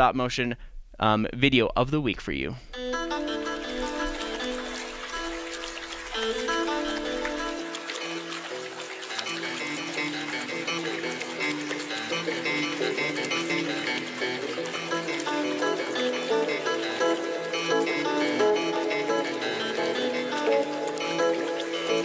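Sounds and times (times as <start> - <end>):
instrumental melody of held notes: 2.7 - 22.0.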